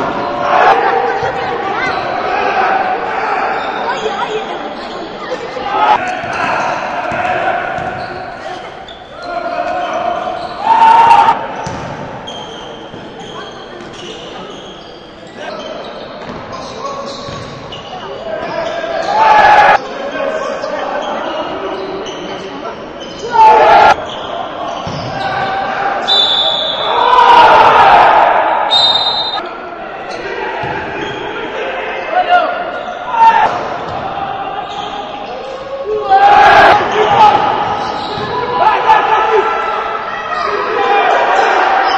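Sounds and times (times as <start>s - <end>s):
loud shout: 0.0s - 4.5s, 5.4s - 8.5s, 9.2s - 11.6s, 18.3s - 21.4s, 23.2s - 24.0s, 24.6s - 41.9s
players calling out: 0.0s - 41.9s
voices around the court: 0.0s - 41.9s
basketball bouncing: 7.1s - 8.1s, 11.6s - 12.2s
basketball bouncing on floor: 7.8s - 8.0s, 11.6s - 12.0s
shoe squeaks on court: 11.6s - 19.1s, 37.0s - 38.3s.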